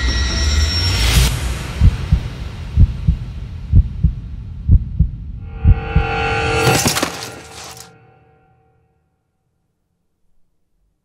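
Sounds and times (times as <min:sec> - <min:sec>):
heartbeat thumps: 0:01.7 - 0:06.2.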